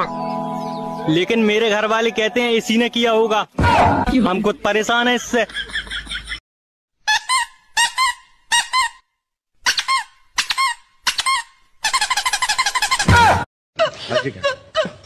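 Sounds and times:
high squeaky chirps: 7.1s - 9.0s, 9.6s - 13.1s.

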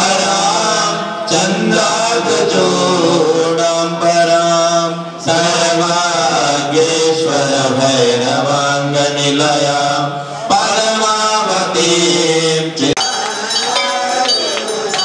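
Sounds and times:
person chanting melodically: 0.0s - 15.0s.

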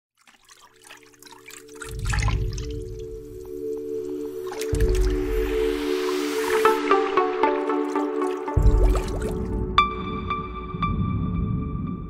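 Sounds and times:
dripping water: 0.2s - 11.4s
held chord music: 2.8s - 12.0s.

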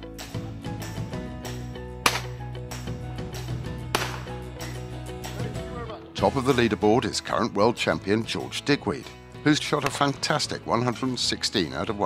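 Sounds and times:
background music with held tones: 0.0s - 12.0s
shotgun shot: 2.0s - 2.4s, 3.9s - 4.4s.

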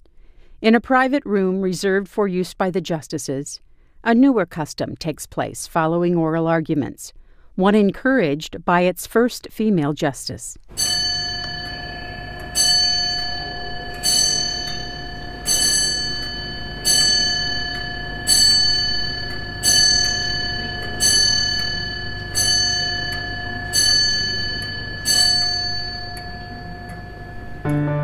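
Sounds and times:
clock striking on a bell: 10.7s - 27.8s.

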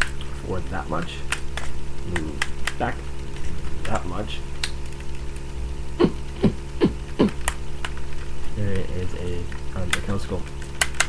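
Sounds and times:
electrical hum: 0.0s - 11.0s
sharp clicks: 3.9s - 5.5s.

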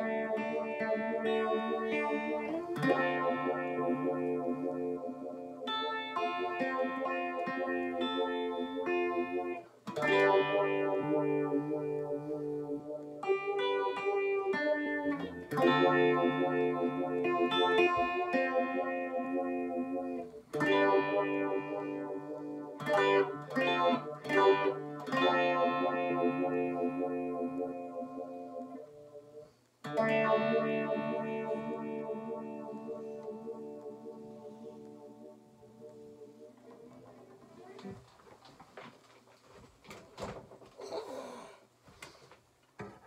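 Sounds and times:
electric guitar chord with tremolo: 0.0s - 29.3s, 29.9s - 36.5s.

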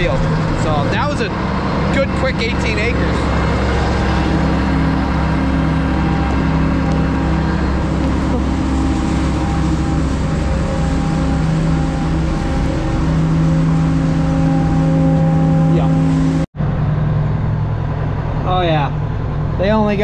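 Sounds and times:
heavy diesel engine running: 0.0s - 20.0s.

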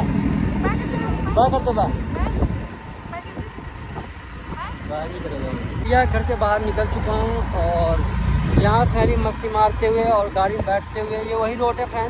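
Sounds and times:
wind rumble on microphone: 0.0s - 6.4s, 8.3s - 10.8s
motorbike road noise: 0.0s - 12.0s.

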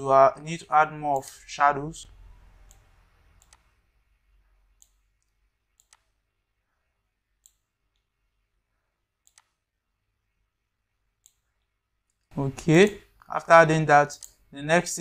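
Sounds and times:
computer mouse clicks: 2.6s - 3.7s, 4.8s - 6.2s, 7.4s - 8.1s, 9.2s - 9.6s, 11.2s - 13.3s, 14.1s - 14.4s.

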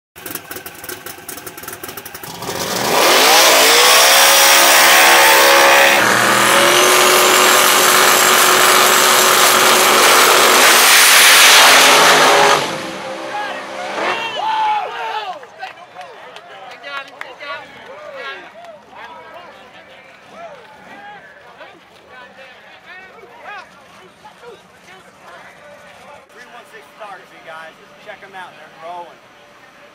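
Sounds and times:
race car engines revving: 0.2s - 15.1s.

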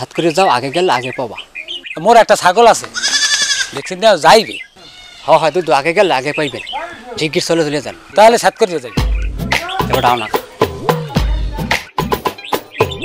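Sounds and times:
men talking: 0.0s - 11.9s
goat bleating: 2.8s - 3.8s, 4.8s - 5.4s.

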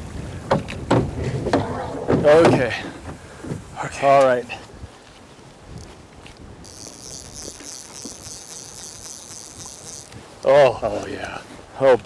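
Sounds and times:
low wind: 0.0s - 12.0s
river water noise: 0.0s - 12.0s.

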